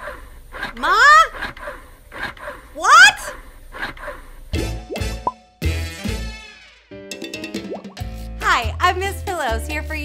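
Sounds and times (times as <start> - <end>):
electric breast pump pulsing: 0.5 - 2.6
woman calling out: 0.8 - 1.3, 2.8 - 3.3.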